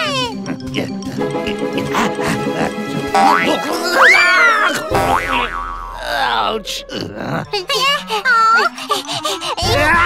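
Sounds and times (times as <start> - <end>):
cartoon voice: 0.0 - 1.0, 6.0 - 10.0
background music: 0.0 - 10.0
springy boing: 4.9 - 6.0.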